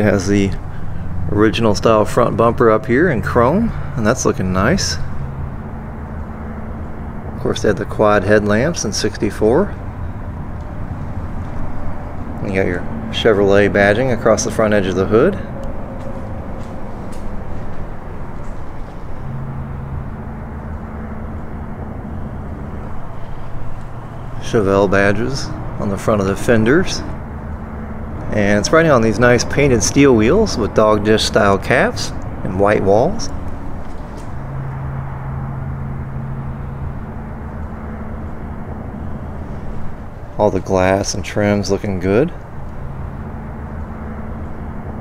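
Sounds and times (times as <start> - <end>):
deep tone: 0.0 - 45.0
low even hum: 0.0 - 45.0
low rumbling background noise: 0.0 - 45.0
rushing noise: 0.0 - 45.0.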